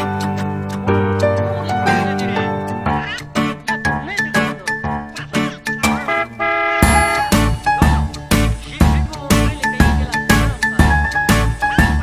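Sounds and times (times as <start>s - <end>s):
squawky quacking duck voice: 2.3s - 3.5s
cartoon orchestral music: 5.7s - 8.7s.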